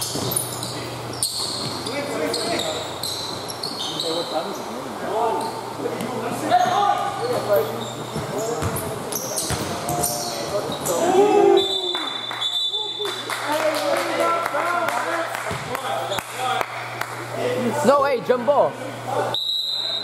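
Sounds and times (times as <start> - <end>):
basketball bouncing on court: 0.0 - 0.5, 8.1 - 10.0, 15.5 - 15.8
sneakers squeaking: 0.0 - 13.0
players' indistinct calls: 0.0 - 18.0.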